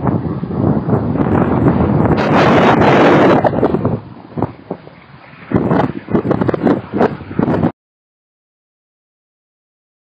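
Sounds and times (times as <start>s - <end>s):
wind buffeting microphone: 0.0s - 7.8s.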